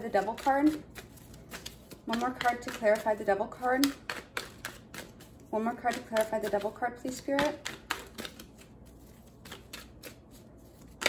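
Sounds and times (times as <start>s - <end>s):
cards being shuffled: 0.0s - 3.2s, 7.4s - 11.0s.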